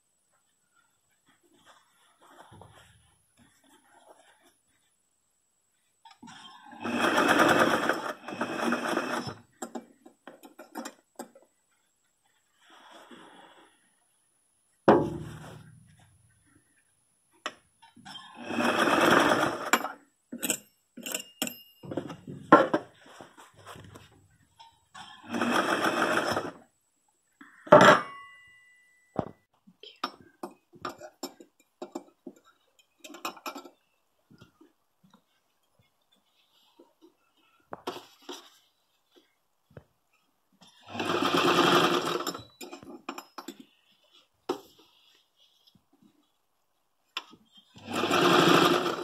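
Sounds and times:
sewing machine stitching: 0:06.3 - 0:09.8, 0:18.1 - 0:20.6, 0:25.0 - 0:26.6, 0:40.8 - 0:42.8, 0:47.8 - 0:49.0.

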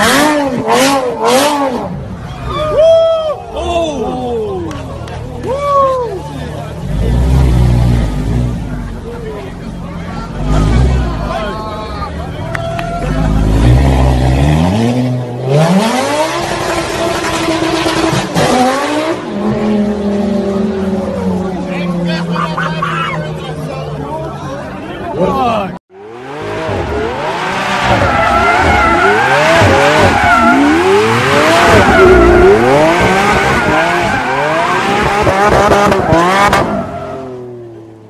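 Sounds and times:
car engine revving: 0:00.0 - 0:02.2, 0:06.4 - 0:11.6, 0:12.2 - 0:25.4, 0:26.0 - 0:38.0.

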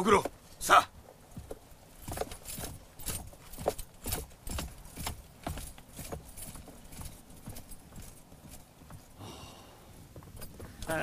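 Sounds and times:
horse hooves clip-clopping: 0:00.0 - 0:09.2, 0:09.9 - 0:11.0.

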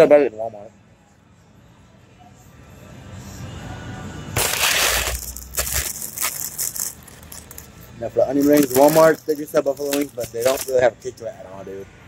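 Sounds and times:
paper bag crinkling: 0:04.4 - 0:07.6.

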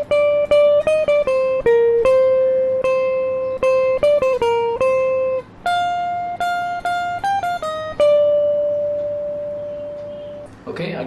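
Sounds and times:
electric guitar note ringing: 0:00.0 - 0:10.6.

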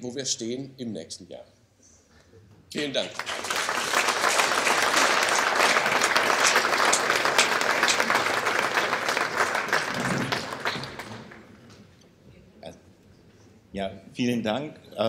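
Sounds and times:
audience applauding: 0:02.8 - 0:11.7.

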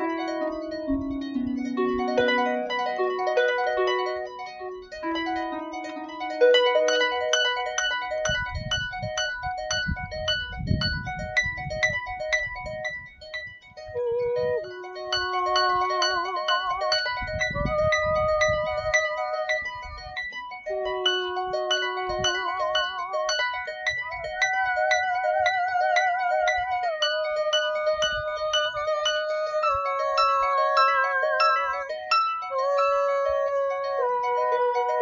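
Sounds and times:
harp plucked: 0:00.0 - 0:12.9, 0:13.9 - 0:35.0
woman singing with vibrato: 0:14.0 - 0:19.7, 0:20.7 - 0:35.0.

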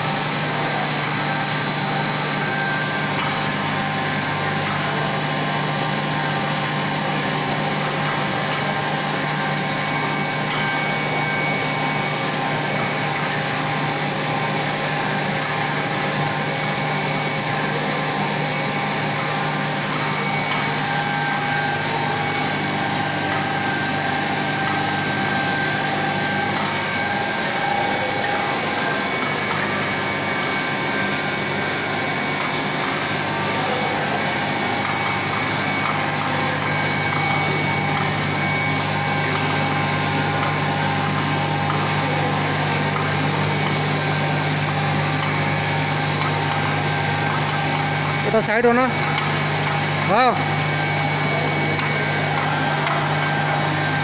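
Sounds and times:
steady whining tones: 0:00.0 - 0:54.0
tube mill mechanical drone: 0:00.0 - 0:54.0.

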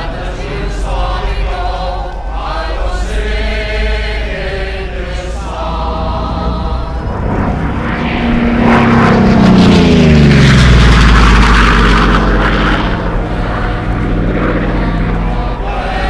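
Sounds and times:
propeller aircraft passing: 0:00.0 - 0:16.0.

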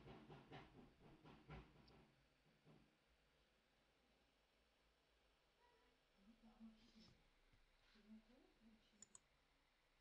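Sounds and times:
faint sharp clicks: 0:09.0 - 0:09.3.

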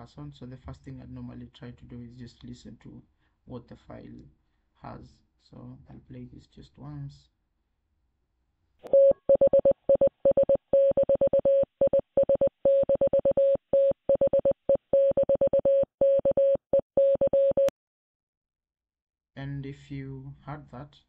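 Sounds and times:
morse code beeps: 0:08.9 - 0:17.7.

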